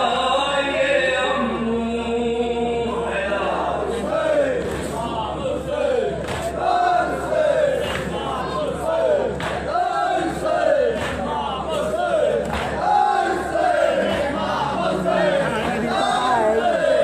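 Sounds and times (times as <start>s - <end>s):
men chanting over a pa: 0.0s - 17.0s.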